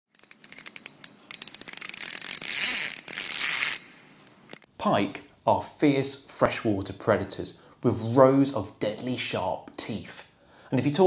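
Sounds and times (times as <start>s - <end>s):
high rattling buzz: 0.1s - 4.6s.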